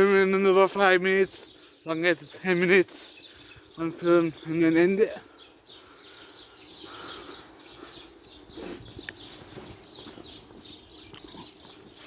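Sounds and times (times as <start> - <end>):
small birds chirping: 0.0 - 12.0
footsteps on pavement: 8.3 - 12.0.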